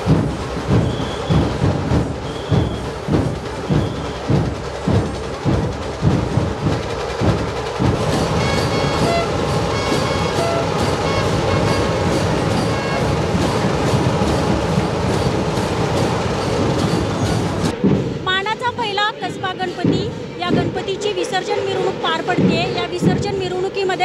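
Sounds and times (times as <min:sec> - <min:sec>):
procession drumming: 0:00.0 - 0:24.0.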